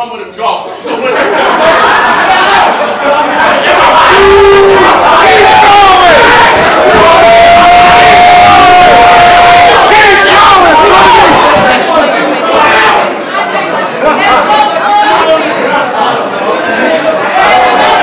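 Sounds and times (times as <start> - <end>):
crowd shouting and hollering: 0.8 - 18.0.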